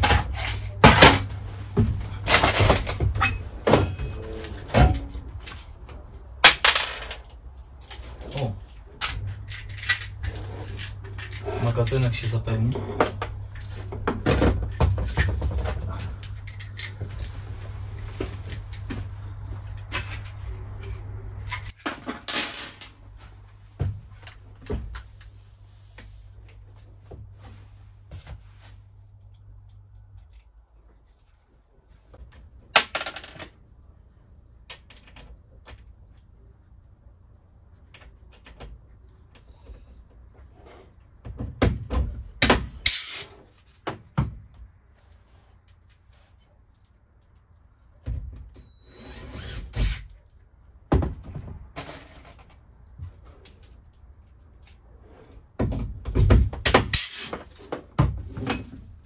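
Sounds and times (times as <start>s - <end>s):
low steady hum: 0.0s - 41.1s
hand tools clattering on metal frame: 2.1s - 8.4s.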